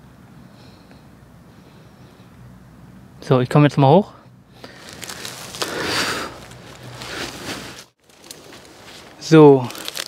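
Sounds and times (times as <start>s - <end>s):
dry leaves rustling and crunching: 4.7s - 10.0s.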